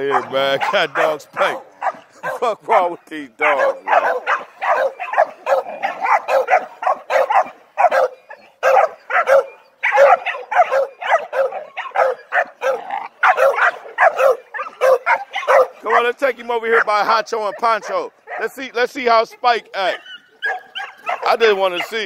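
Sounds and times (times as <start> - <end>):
dog yapping: 0.0 - 16.0, 19.8 - 22.0.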